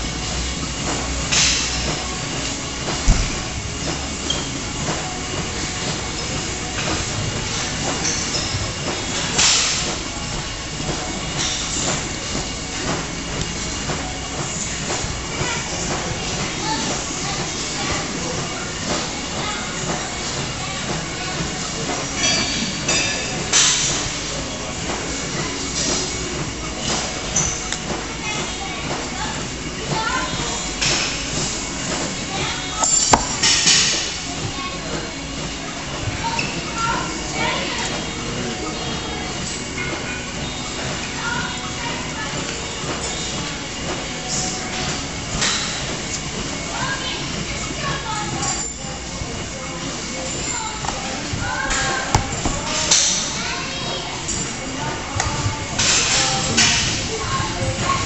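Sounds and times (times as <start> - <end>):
steady rumble: 0.0 - 22.0
gym music: 0.0 - 58.0
people talking: 4.8 - 45.5, 46.2 - 58.0
bag of weights knocking: 33.1 - 33.4, 52.1 - 53.0.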